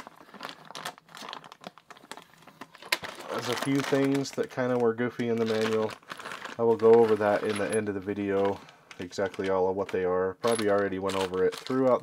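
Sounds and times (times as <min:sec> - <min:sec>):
plastic bag crinkling and rustling: 0:00.0 - 0:12.0.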